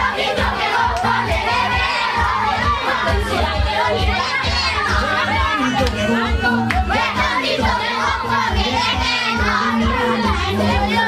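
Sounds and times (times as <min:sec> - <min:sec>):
children shouting and singing: 0:00.0 - 0:11.0
loud dance music: 0:00.0 - 0:11.0.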